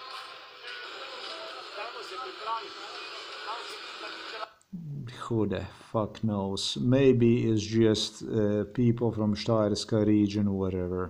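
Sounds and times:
man speaking: 0:04.7 - 0:11.0.

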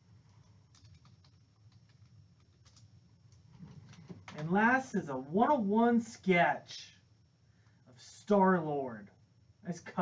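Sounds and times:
typing on computer keyboard: 0:00.7 - 0:04.5.

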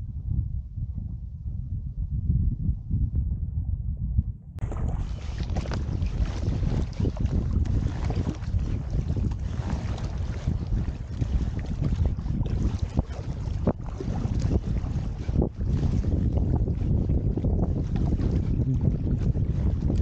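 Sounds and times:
wind buffeting microphone: 0:00.0 - 0:20.0
water splashing and lapping: 0:04.6 - 0:20.0.

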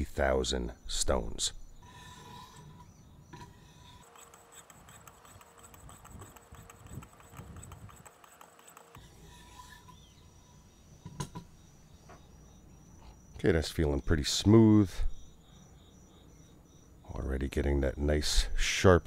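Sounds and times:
sharpening stones rubbing blade: 0:03.8 - 0:10.1.

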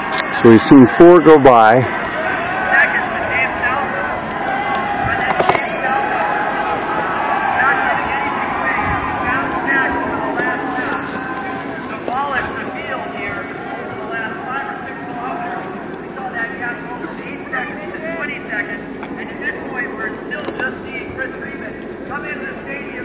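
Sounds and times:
announcer over loudspeaker: 0:00.0 - 0:23.0
indistinct speech: 0:00.3 - 0:04.2, 0:05.0 - 0:23.0.

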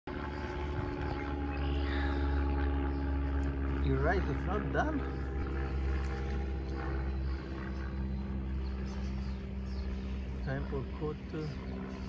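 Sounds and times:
motor droning steadily: 0:00.1 - 0:12.0.

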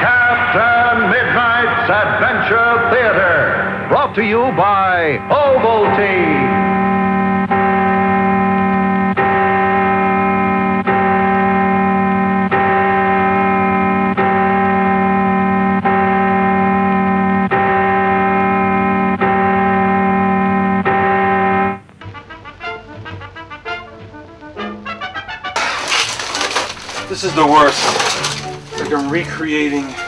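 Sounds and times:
sustained organ-like tone: 0:00.0 - 0:21.9, 0:25.9 - 0:30.0.

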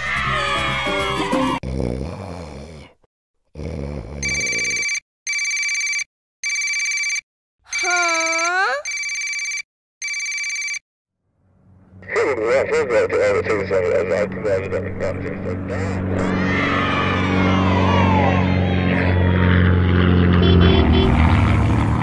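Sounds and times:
electronic phone ringtone: 0:04.2 - 0:10.8
cartoon character voice: 0:07.7 - 0:08.9.

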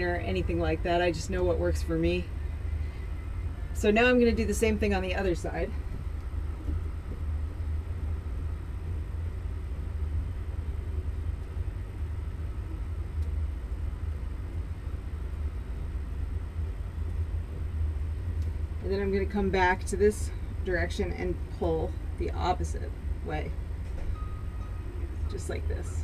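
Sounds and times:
low rumble: 0:00.0 - 0:26.0.

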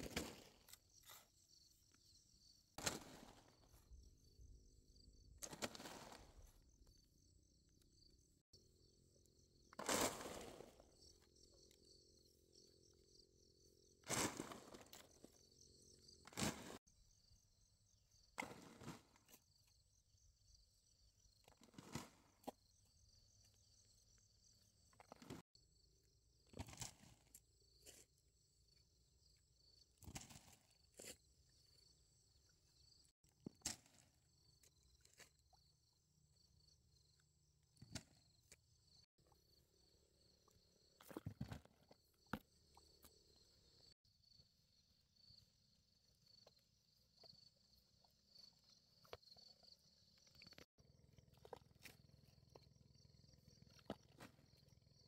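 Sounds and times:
digging tool scraping soil: 0:09.8 - 0:10.9, 0:16.2 - 0:16.8.

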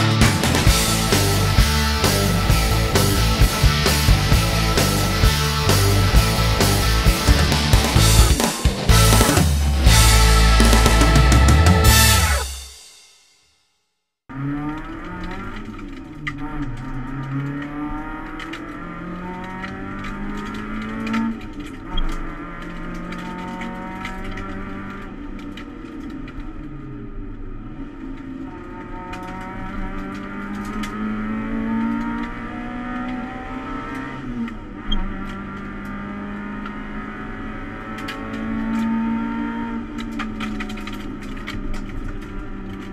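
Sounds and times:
car engine droning: 0:00.0 - 0:12.7, 0:14.3 - 0:42.9.

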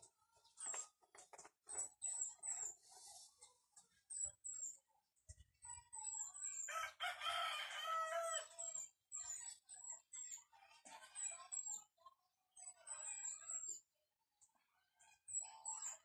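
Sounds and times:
rooster crowing: 0:06.7 - 0:08.5.

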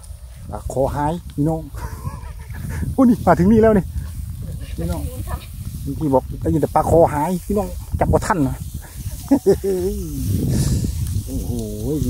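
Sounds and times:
straw rustling: 0:00.0 - 0:12.0
man speaking: 0:09.4 - 0:10.4, 0:11.3 - 0:12.0.

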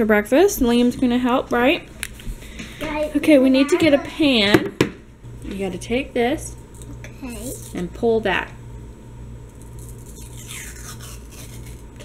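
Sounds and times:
paper wrapper tearing: 0:09.7 - 0:12.0.

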